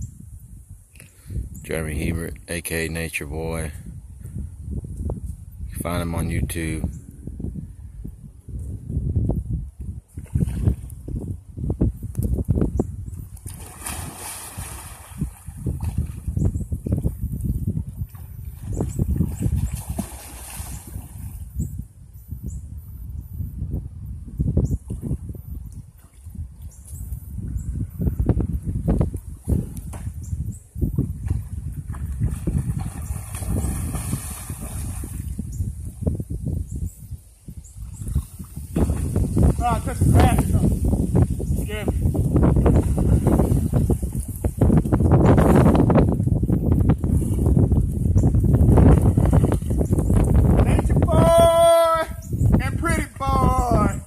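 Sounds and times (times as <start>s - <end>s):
water sloshing and splashing: 13.3s - 16.4s, 18.1s - 21.4s, 31.2s - 35.4s.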